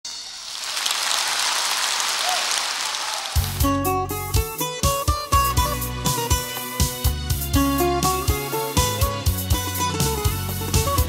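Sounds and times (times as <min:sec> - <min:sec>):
audience applause: 0:00.4 - 0:03.7.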